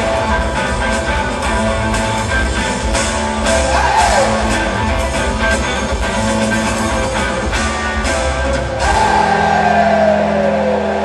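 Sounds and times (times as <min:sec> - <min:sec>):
drums: 0:00.0 - 0:11.0
electric guitar: 0:00.0 - 0:11.0
keyboards: 0:00.0 - 0:11.0.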